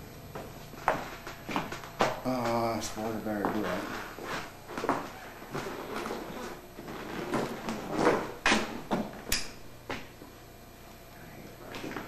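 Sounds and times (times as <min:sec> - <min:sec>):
sharp click: 0:09.3 - 0:09.6.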